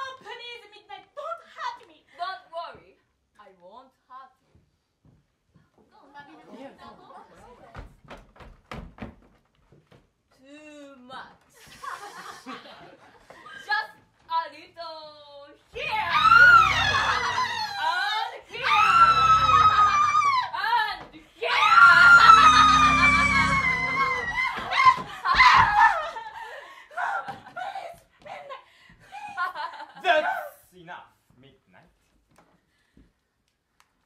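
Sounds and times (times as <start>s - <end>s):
woman screaming: 15.8s - 26.2s.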